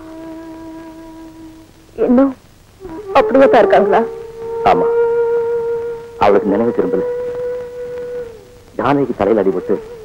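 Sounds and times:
long held music note: 0.0s - 10.0s.

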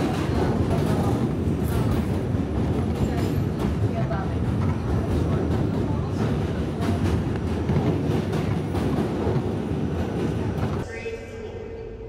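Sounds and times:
subway train rumble: 0.0s - 12.0s.

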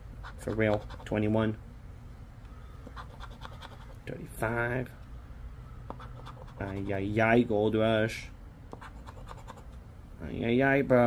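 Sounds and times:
scratching a lottery ticket: 0.2s - 1.2s, 2.9s - 4.0s, 6.0s - 7.1s, 8.8s - 9.7s.

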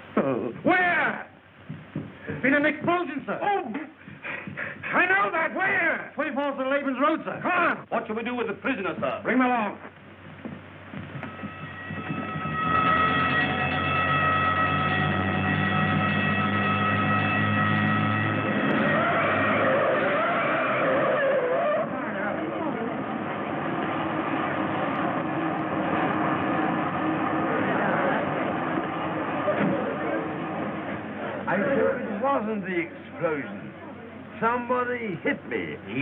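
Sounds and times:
police siren: 11.3s - 22.0s
car engine: 12.2s - 21.1s
crowd voices: 17.8s - 36.0s.

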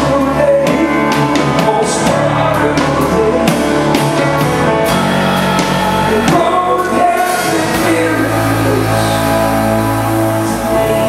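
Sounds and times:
guitar-led band backing: 0.0s - 11.0s
person singing: 0.0s - 11.0s.

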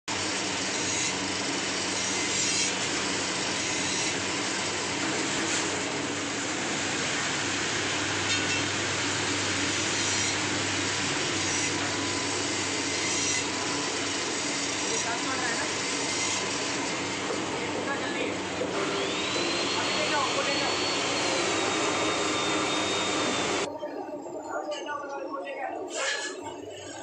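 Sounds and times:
metal shredder grinding: 0.1s - 23.7s, 25.9s - 27.0s.

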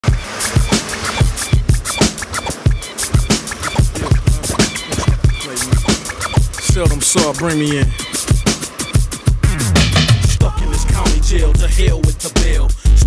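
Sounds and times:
hip hop beat: 0.0s - 13.0s.

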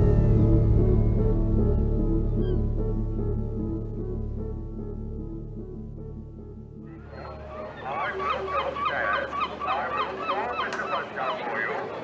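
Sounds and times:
gulls squawking: 6.9s - 12.0s.

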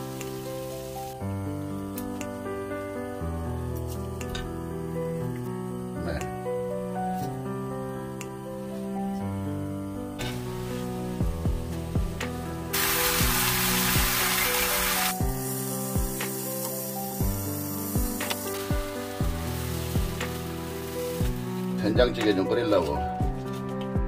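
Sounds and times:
ribs sizzling on a griddle pan: 0.0s - 1.2s, 10.2s - 22.2s
background music with steady beat: 0.0s - 24.0s.

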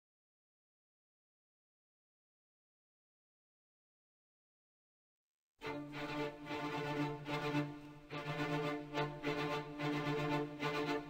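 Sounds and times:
instrumental background music: 5.6s - 11.0s.

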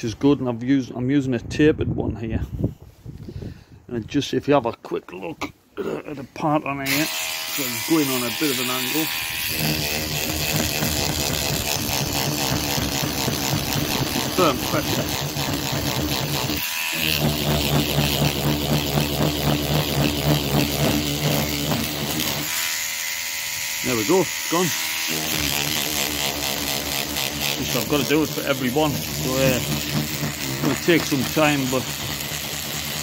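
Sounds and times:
rotary brush whirring: 6.6s - 33.0s.

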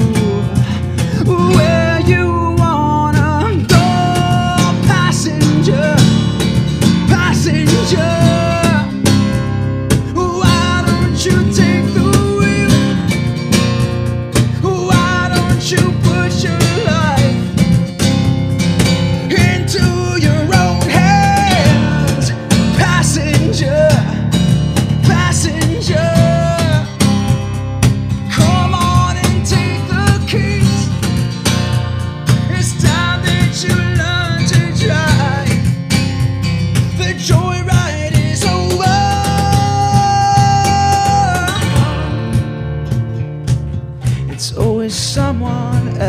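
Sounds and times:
man singing: 0.0s - 13.3s, 14.4s - 17.9s, 19.2s - 27.4s, 28.2s - 31.2s, 32.2s - 35.7s, 36.6s - 42.5s, 44.0s - 46.0s
strummed acoustic guitar: 0.0s - 46.0s.

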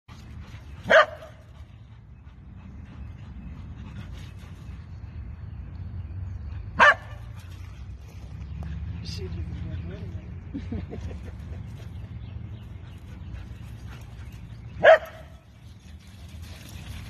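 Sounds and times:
dog barking: 0.9s - 1.3s, 6.8s - 7.2s, 14.8s - 15.3s.

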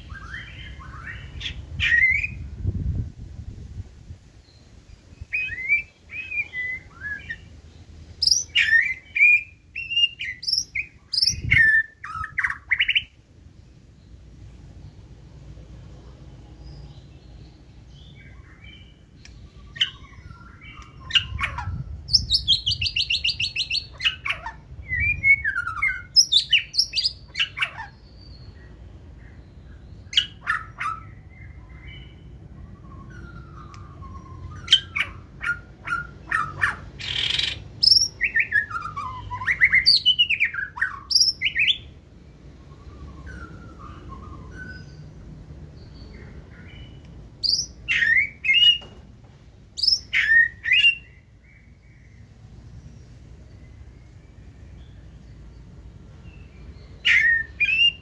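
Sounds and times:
bird singing whistled phrases: 5.2s - 7.5s, 8.2s - 13.1s, 19.6s - 28.0s, 32.7s - 41.9s, 42.6s - 45.1s, 47.4s - 48.9s, 49.8s - 51.2s, 57.0s - 58.0s.

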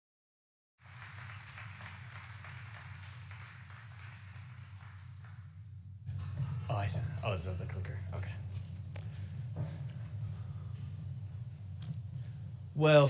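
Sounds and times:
audience applause: 0.8s - 5.5s
steady low hum: 0.8s - 13.0s.

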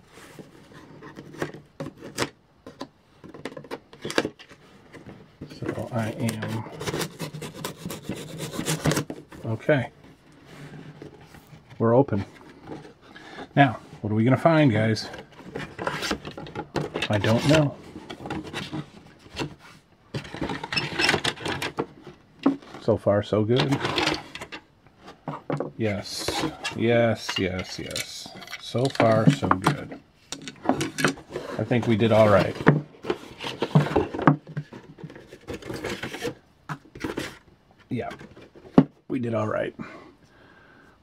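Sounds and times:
plastic parts clicking and scraping: 0.3s - 13.6s, 14.7s - 22.9s, 23.5s - 38.9s
cardboard flaps rustling: 30.6s - 39.0s.

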